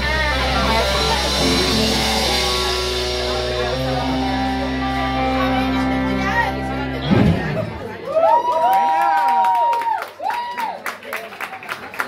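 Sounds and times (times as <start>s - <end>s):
electric guitars and bass chords: 0.0s - 8.2s.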